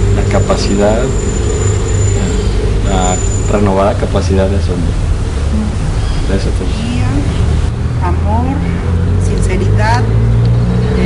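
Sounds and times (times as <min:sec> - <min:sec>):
high-pitched whine: 0:00.0 - 0:07.7
steady low rumble: 0:00.0 - 0:10.4
person speaking: 0:05.5 - 0:07.4.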